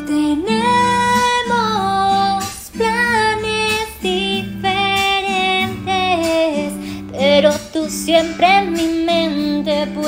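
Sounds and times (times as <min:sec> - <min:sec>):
soft guitar accompaniment: 0:00.0 - 0:10.0
woman singing: 0:00.0 - 0:10.0.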